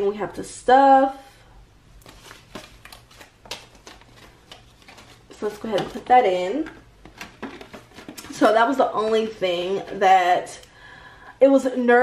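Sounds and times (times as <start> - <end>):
paper bills snapping: 2.0 - 5.7
paper bills rustling: 2.0 - 6.1.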